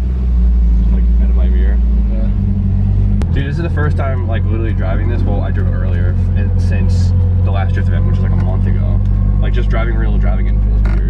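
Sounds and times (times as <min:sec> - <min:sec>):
car engine idling low drone: 0:00.0 - 0:11.0.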